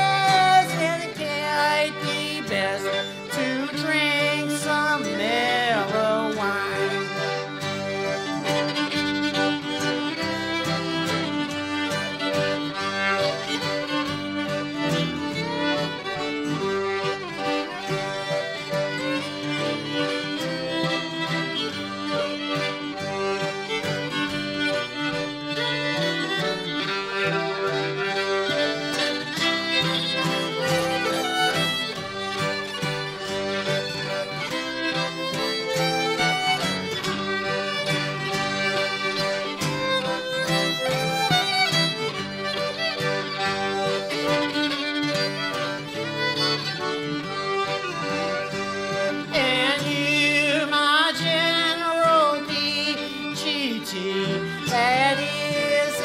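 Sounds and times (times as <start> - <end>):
acoustic guitar strumming: 0.0 - 56.0
fiddle playing: 0.0 - 56.0
piano accordion: 0.0 - 56.0.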